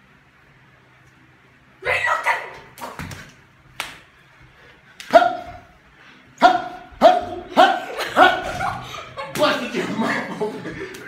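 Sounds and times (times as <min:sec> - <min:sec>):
sharp slaps: 0:02.7 - 0:04.1, 0:05.0 - 0:05.5
dog barking: 0:06.4 - 0:08.3.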